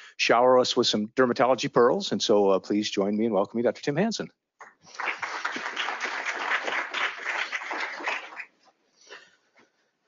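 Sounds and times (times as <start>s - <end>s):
audience applauding: 4.6s - 8.6s.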